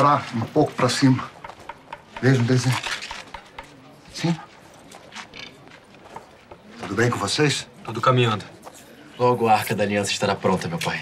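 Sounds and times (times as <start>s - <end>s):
hand tools tapping on wood: 1.0s - 3.8s, 5.4s - 6.7s.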